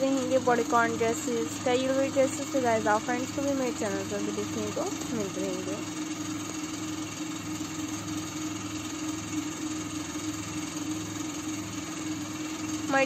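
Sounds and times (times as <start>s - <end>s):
low machine hum: 0.0s - 13.0s.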